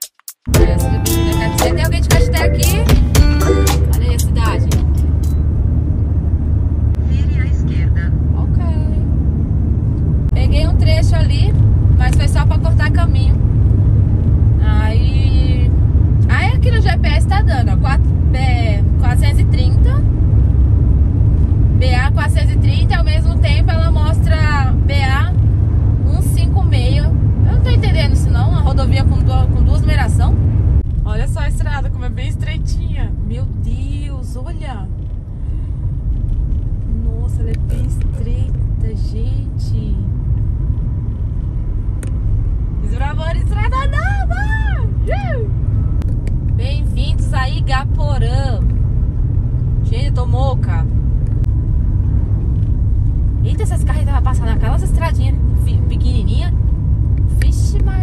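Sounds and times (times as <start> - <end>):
car road and engine noise: 0.0 - 58.0
person talking: 0.6 - 5.0.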